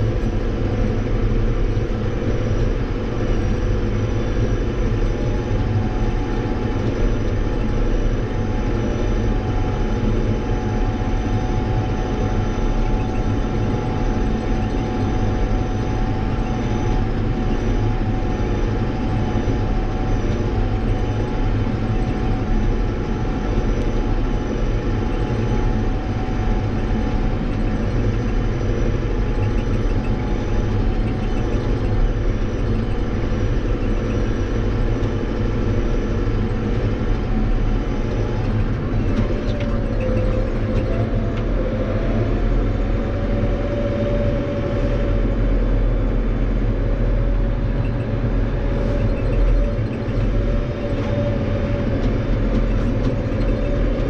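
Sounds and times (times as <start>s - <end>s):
tractor diesel engine drone: 0.0s - 54.0s.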